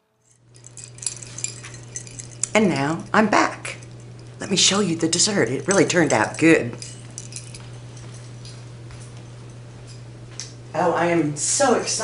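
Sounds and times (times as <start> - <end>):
tableware clinking: 0.2 - 8.6
steady low hum: 0.2 - 12.0.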